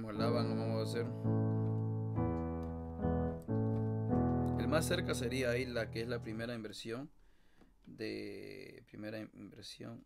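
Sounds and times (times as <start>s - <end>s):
piano chords: 0.0s - 6.6s.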